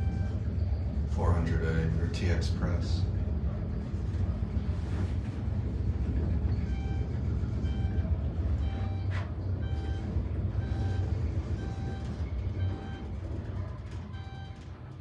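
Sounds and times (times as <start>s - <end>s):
elevator low rumble: 0.0s - 15.0s
short electronic beeps: 6.6s - 13.2s.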